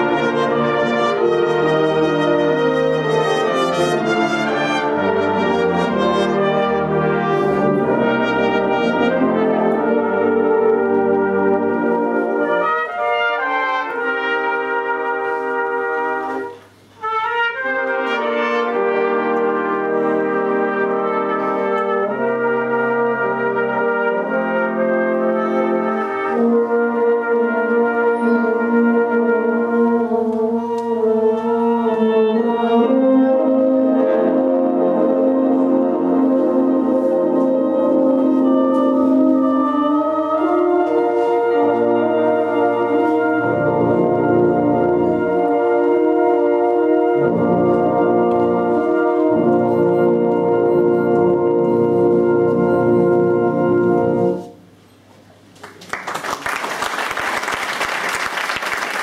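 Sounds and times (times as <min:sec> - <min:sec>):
brass band playing chords: 0:00.0 - 0:54.8.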